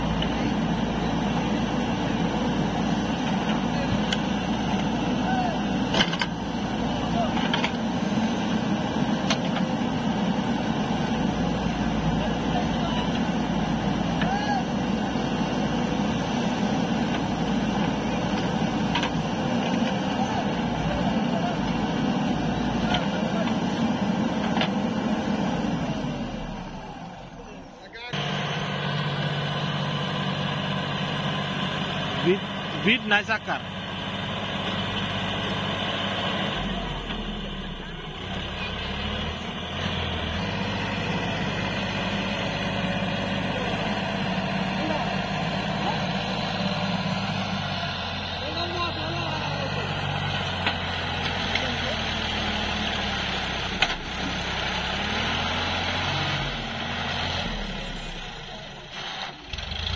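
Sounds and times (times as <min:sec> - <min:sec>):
diesel engine under load: 0:00.0 - 0:59.9.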